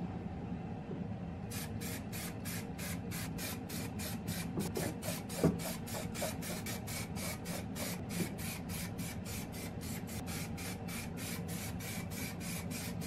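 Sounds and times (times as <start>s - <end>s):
spray can bursts: 1.5s - 4.4s.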